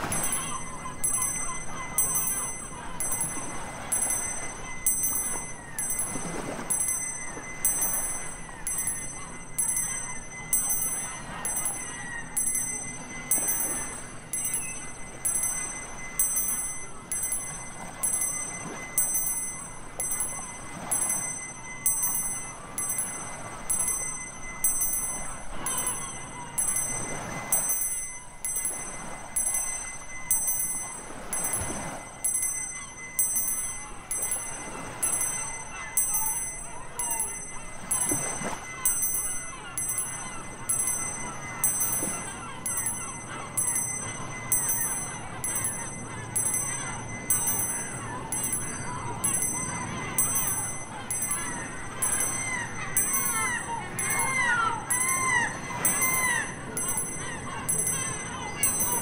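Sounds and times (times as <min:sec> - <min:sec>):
surf washing: 0:00.0 - 0:11.6, 0:12.6 - 0:43.0
hand bell ringing: 0:00.0 - 0:59.0.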